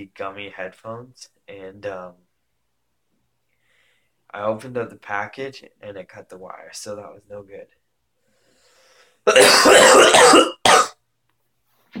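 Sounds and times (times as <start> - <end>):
man coughing: 9.3 - 11.0.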